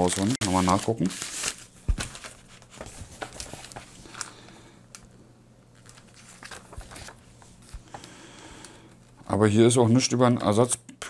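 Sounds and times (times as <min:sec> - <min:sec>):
paper pages rustling: 0:00.0 - 0:04.3, 0:05.8 - 0:08.2.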